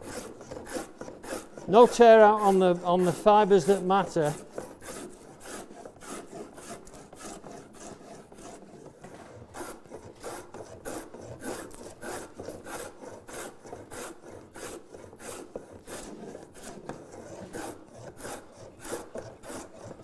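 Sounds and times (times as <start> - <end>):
plane rasping through wood: 0.0 - 20.0.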